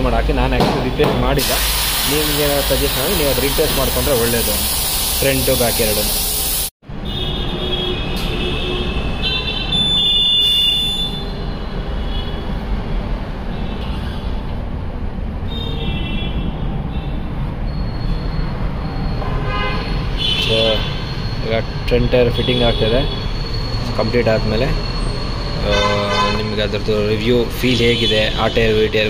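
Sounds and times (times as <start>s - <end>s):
street traffic rumble: 0.0s - 29.0s
high-pitched horn toots: 19.2s - 28.8s.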